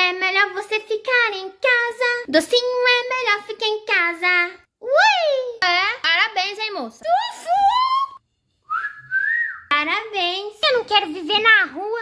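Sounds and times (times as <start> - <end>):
person whistling rising note: 8.6 - 9.7.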